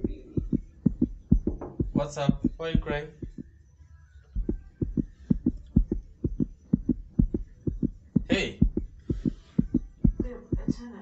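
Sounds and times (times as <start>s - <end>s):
heartbeat thuds: 0.0s - 3.5s, 4.4s - 11.0s.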